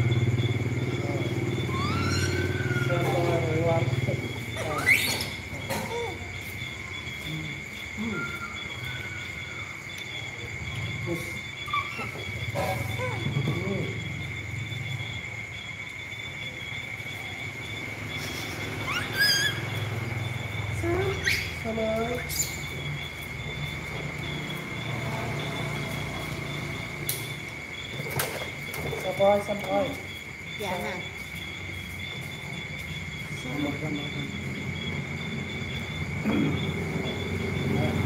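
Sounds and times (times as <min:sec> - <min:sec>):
high-pitched insect chirring: 0:00.0 - 0:38.0
rising squeals: 0:00.9 - 0:05.6, 0:17.8 - 0:27.1.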